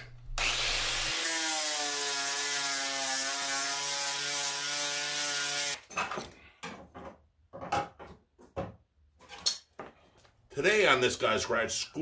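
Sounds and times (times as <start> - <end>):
angle grinder sanding metal: 0.4 - 5.8.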